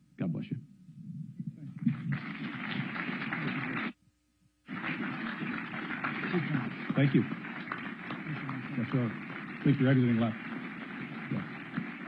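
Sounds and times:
audience applauding: 0:01.8 - 0:04.0, 0:04.7 - 0:12.0.

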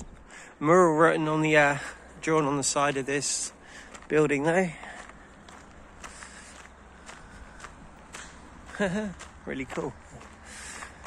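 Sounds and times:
footsteps walking: 0:01.8 - 0:11.0.

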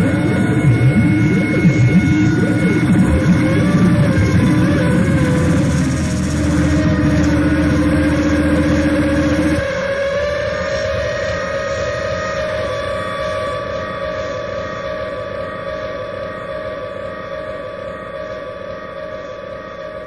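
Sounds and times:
low rumbling layer: 0:00.0 - 0:15.0
held drone tones: 0:00.0 - 0:20.0.

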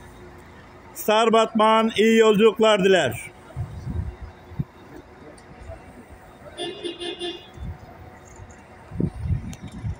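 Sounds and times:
vehicle horn short toots: 0:06.6 - 0:07.6.

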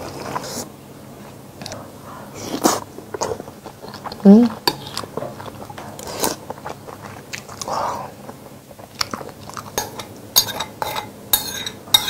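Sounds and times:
person chewing food: 0:02.4 - 0:10.0.

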